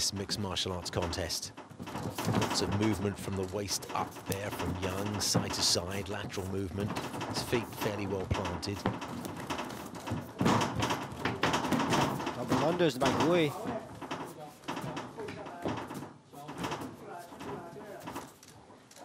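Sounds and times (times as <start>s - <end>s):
knocks and scuffs: 0.0s - 18.8s.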